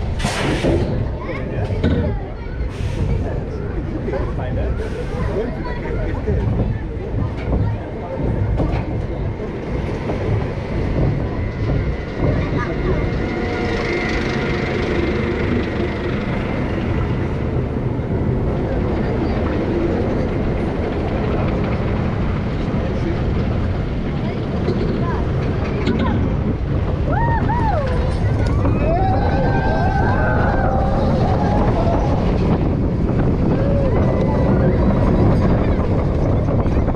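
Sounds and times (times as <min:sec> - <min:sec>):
roller coaster wheels rumbling: 0:00.0 - 0:36.9
wind on microphone: 0:00.0 - 0:36.9.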